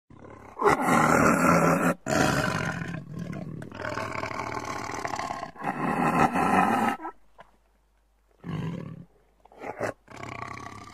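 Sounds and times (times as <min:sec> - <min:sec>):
tiger roaring and snarling: 0:00.1 - 0:07.2.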